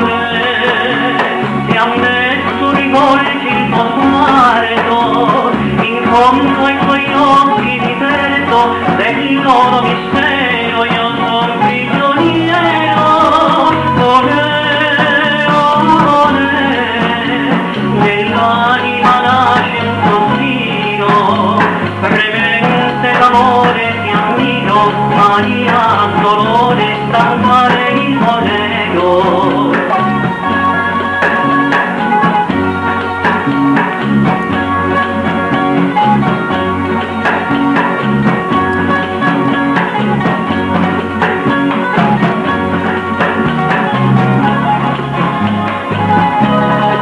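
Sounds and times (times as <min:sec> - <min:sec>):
guitar accompaniment: 0:00.0 - 0:47.0
person singing: 0:00.0 - 0:47.0
steady bass line: 0:00.0 - 0:47.0.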